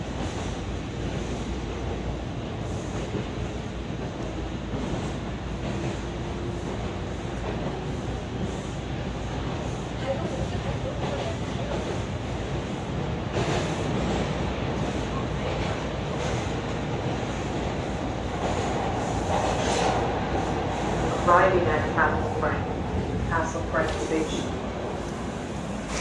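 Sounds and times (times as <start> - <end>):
subway car rumble on rails: 0.0 - 26.0
recorded station announcement: 21.0 - 24.6.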